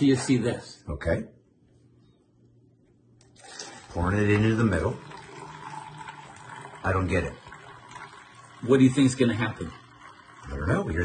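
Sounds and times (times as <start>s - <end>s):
coffee pouring into paper cup: 3.3s - 11.0s.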